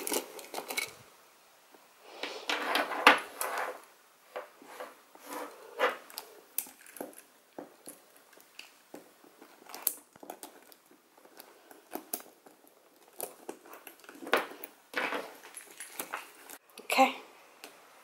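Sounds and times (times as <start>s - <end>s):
leather rustling: 9.1s - 16.6s.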